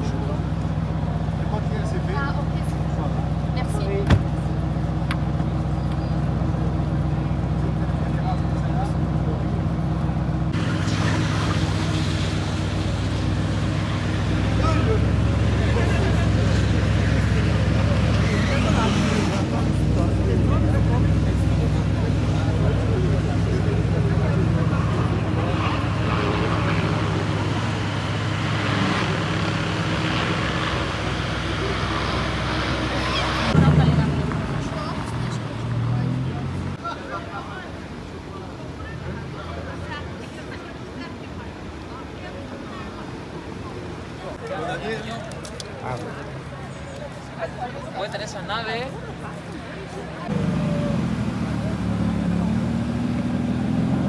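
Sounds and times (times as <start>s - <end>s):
onlookers' voices: 0.0s - 54.0s.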